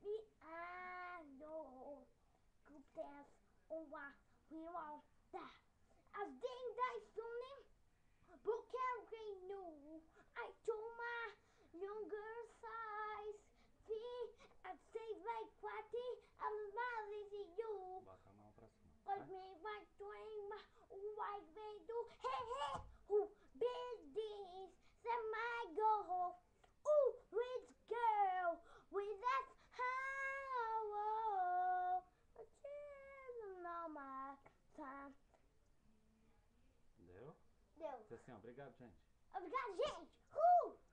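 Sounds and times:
boy singing unaccompanied: 0.0 - 2.1, 2.7 - 7.7, 8.3 - 18.2, 19.0 - 35.3
child singing long notes: 26.9 - 35.2.

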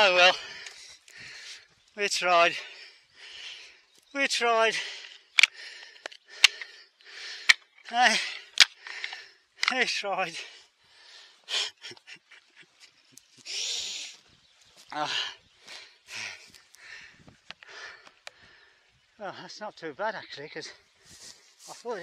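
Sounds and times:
man laughing and exclaiming: 0.0 - 0.4, 11.5 - 12.8
breathy gasps: 4.8 - 9.4, 15.0 - 18.9
sharp clicks: 5.3 - 7.7.

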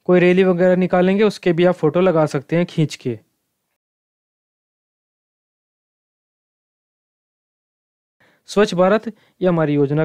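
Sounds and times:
man speaking: 0.0 - 3.3, 8.5 - 10.0.

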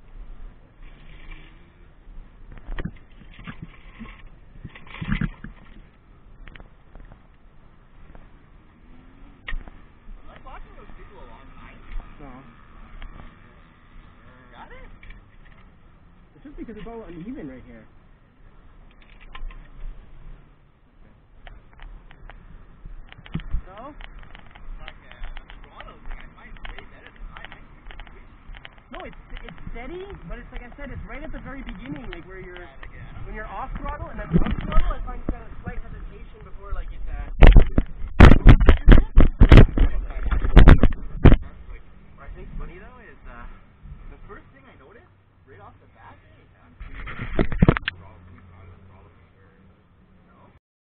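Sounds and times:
low steady rumble: 0.0 - 50.6
camera handling knocks and scrapes: 46.8 - 47.9.

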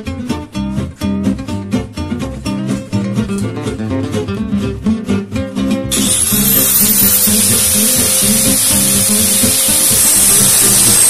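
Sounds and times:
acoustic guitar music: 0.0 - 11.0
angle grinder whining: 5.9 - 11.0.

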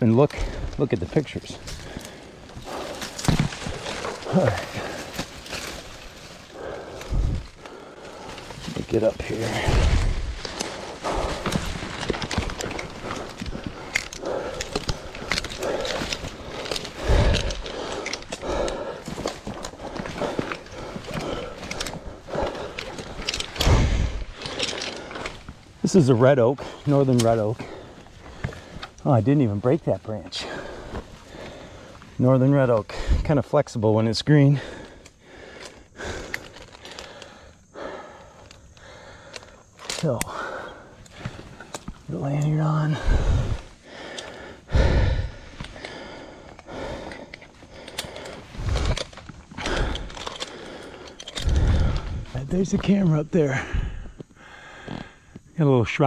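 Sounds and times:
leaves rustling: 0.0 - 33.2
climbing hardware clicking: 0.1 - 29.5, 38.2 - 53.3
low thumps: 9.2 - 17.7.

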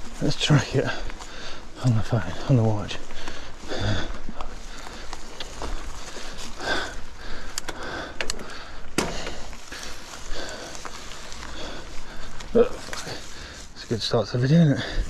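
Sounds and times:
bike rattles and clicks: 0.0 - 15.0
bike tyres on dirt: 0.0 - 15.0
rider breathing: 0.0 - 15.0.

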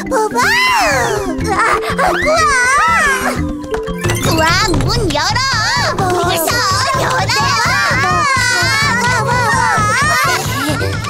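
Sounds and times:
background music with low beat: 1.0 - 11.0
high-pitched cartoon voices chattering: 4.1 - 11.0.

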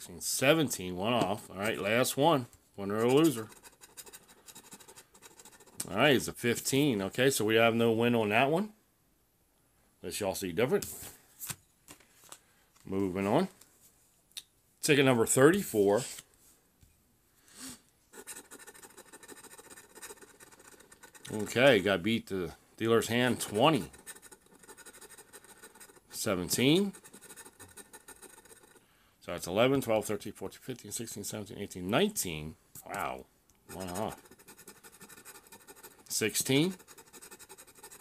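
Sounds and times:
scratching lottery ticket: 2.9 - 5.9, 18.1 - 21.9, 23.0 - 28.8, 33.7 - 38.0.

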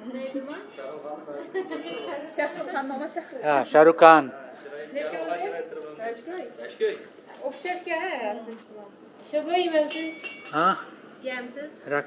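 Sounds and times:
high ringing clink: 9.8 - 10.8.

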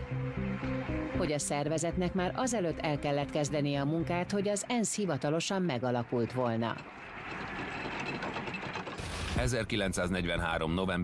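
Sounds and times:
fast mechanical rattle: 6.8 - 9.4.

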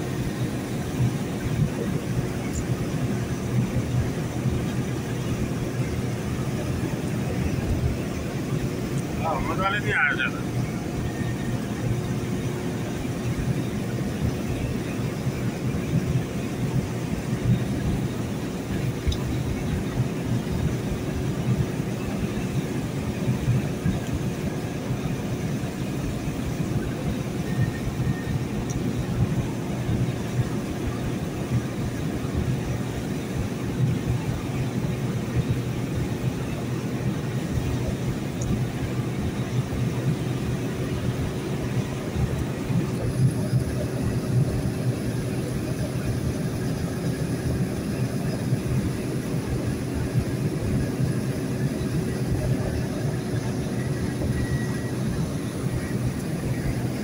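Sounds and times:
vehicle engine and tyres rumbling: 0.0 - 57.0.

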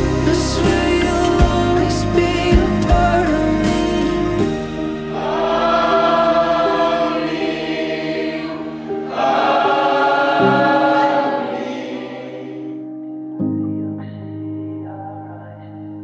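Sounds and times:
choir singing: 0.0 - 4.4, 5.0 - 12.9.

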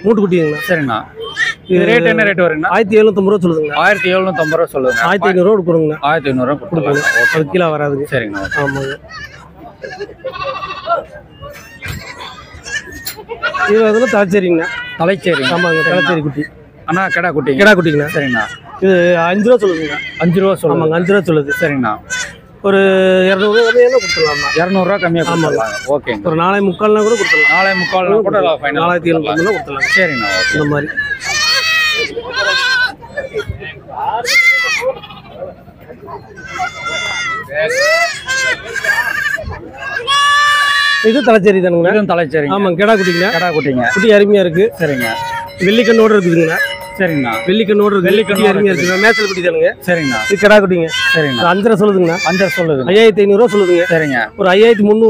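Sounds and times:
goat kids bleating: 0.0 - 2.2, 3.7 - 5.4, 6.8 - 7.5, 8.2 - 22.6, 23.2 - 26.3, 26.9 - 28.2, 29.2 - 33.6, 34.2 - 35.5, 36.3 - 41.4, 42.5 - 54.8
man talking loudly: 41.0 - 55.0.

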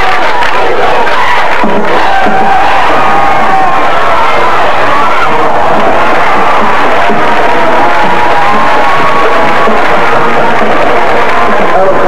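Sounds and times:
football crowd cheering: 0.0 - 12.0.

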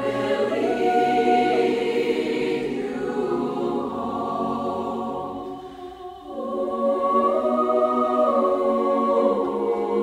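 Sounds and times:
choir singing held notes: 0.0 - 10.0.

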